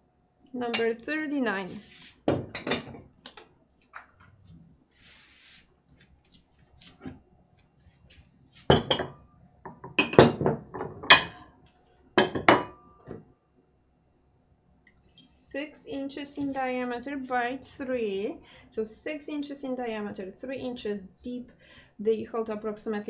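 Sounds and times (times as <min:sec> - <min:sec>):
dishes clinking and knocking: 0:02.3 - 0:03.1, 0:08.7 - 0:11.4, 0:12.2 - 0:13.2.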